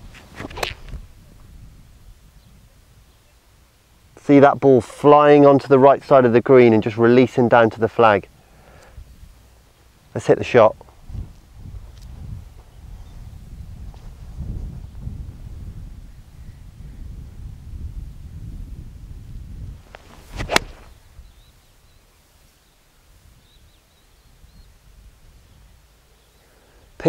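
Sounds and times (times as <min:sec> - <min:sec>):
wind on microphone: 0:00.0 - 0:03.2, 0:08.9 - 0:09.4, 0:10.8 - 0:21.6
golf club striking ball: 0:00.4 - 0:00.9, 0:20.4 - 0:21.0.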